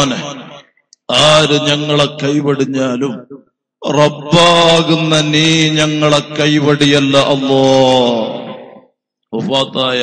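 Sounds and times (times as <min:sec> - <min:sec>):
man chanting melodically: 0:00.0 - 0:10.0.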